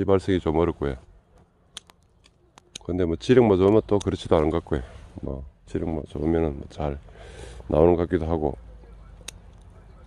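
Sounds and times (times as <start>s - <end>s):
faint sharp clicks: 1.4s - 2.9s.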